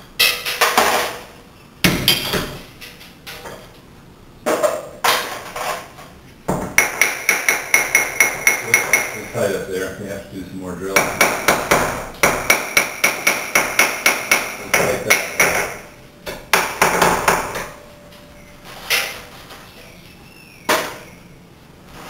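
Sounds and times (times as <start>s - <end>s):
hammer tapping chisel on glass: 6.8s - 9.3s, 11.0s - 17.8s.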